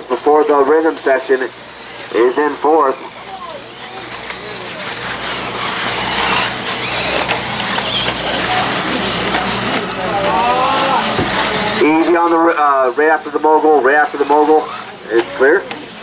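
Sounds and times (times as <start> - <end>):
electric model cars racing: 0.0 - 16.0.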